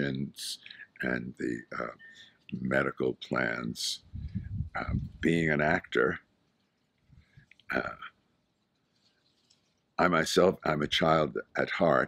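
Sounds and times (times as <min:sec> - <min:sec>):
man saying uh: 0:00.0 - 0:04.0, 0:04.8 - 0:06.2, 0:07.7 - 0:08.1, 0:10.0 - 0:12.0.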